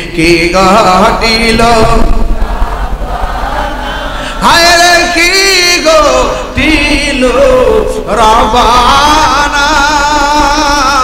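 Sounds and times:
man chanting over a pa: 0:00.0 - 0:02.3, 0:04.4 - 0:11.0.

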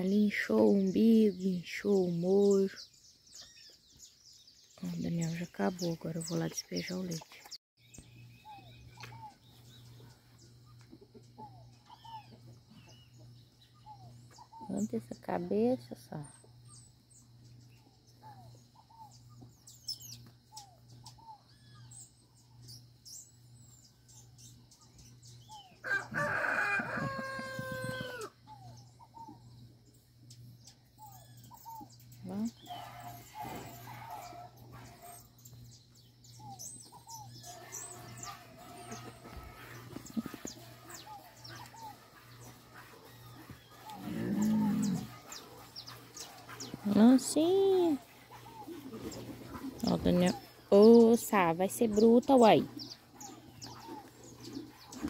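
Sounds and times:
small birds chirping: 0:00.0 - 0:55.0
rooster crowing: 0:25.8 - 0:28.4
steady low hum: 0:26.8 - 0:55.0.

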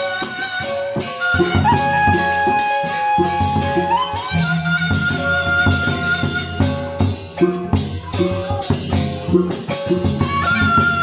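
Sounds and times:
wind instrument long sliding note: 0:00.0 - 0:07.0
large barrel drums beating: 0:01.4 - 0:11.0.

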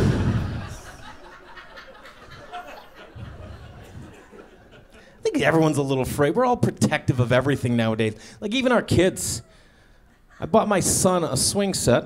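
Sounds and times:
audience laughter and chuckling: 0:00.0 - 0:05.2.

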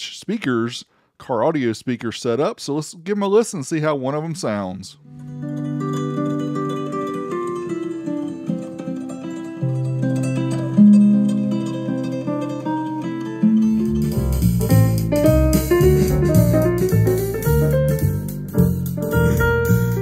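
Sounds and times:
plucked guitar music: 0:05.0 - 0:20.0
music with deep bass and beat: 0:13.8 - 0:20.0.

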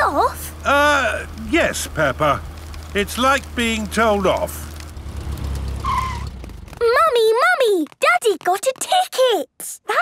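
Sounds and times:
cartoon car engine hum: 0:00.0 - 0:07.4
car brief squeal: 0:05.8 - 0:06.3.

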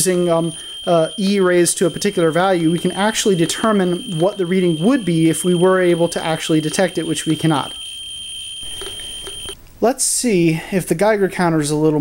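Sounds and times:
survey meter high-pitched tone: 0:00.0 - 0:09.6.

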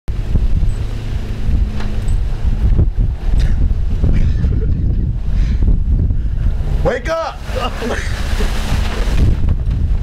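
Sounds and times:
wind buffeting microphone: 0:00.1 - 0:10.0.

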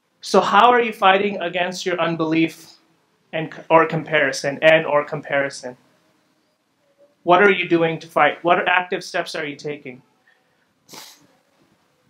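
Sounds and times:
person sniffing: 0:10.9 - 0:11.4.

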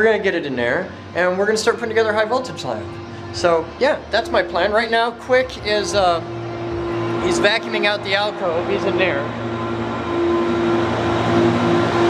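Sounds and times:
vacuum cleaner running: 0:00.8 - 0:12.0.

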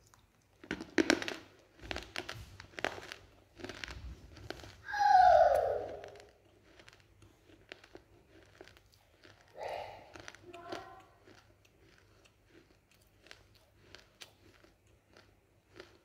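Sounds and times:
person chewing crunchy food: 0:00.0 - 0:16.0
wet mouth clicks: 0:05.5 - 0:15.3.

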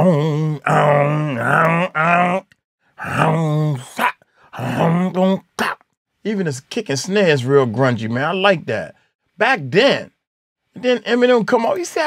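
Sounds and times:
man making low vocal sounds: 0:00.0 - 0:05.8.

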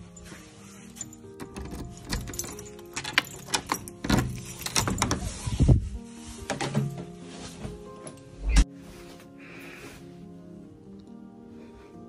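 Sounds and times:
keys jangling: 0:00.0 - 0:05.4
metal door handle worked: 0:01.3 - 0:05.3
key clicking in a door lock: 0:01.4 - 0:05.2
door pushed open: 0:01.4 - 0:05.7.

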